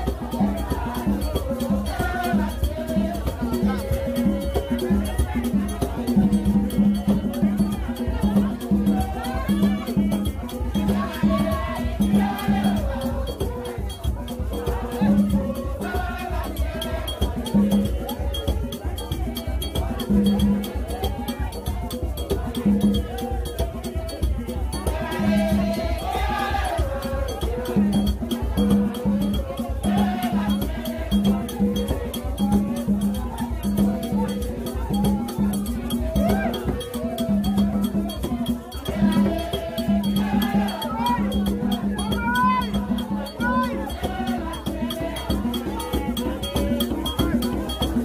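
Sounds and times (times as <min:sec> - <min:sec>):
crowd singing: 0:00.0 - 0:48.0
metal bell struck fast: 0:00.0 - 0:48.0
percussion: 0:00.0 - 0:48.0.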